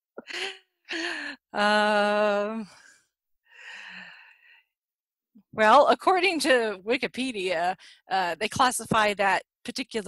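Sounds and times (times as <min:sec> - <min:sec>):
person breathing softly: 0:00.3 - 0:01.5, 0:02.6 - 0:04.7.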